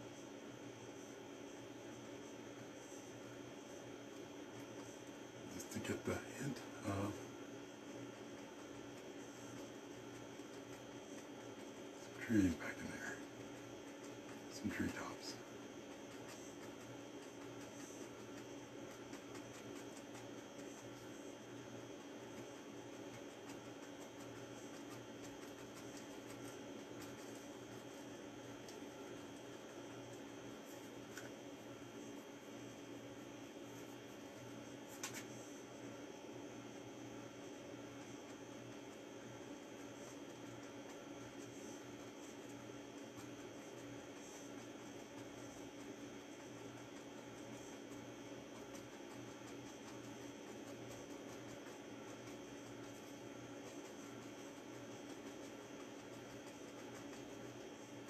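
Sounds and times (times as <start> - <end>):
room hum: 0.0 - 58.0
brush dabbing paint on canvas: 7.8 - 35.4, 37.3 - 58.0.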